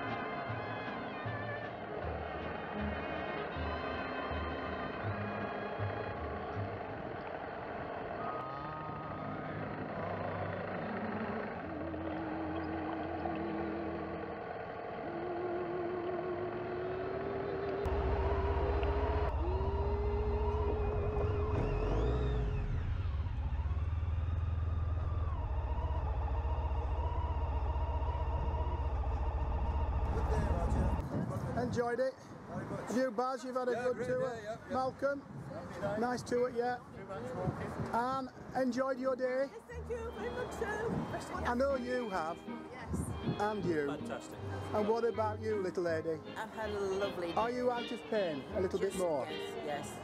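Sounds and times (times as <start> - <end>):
loud low rumble: 11.6 - 31.1.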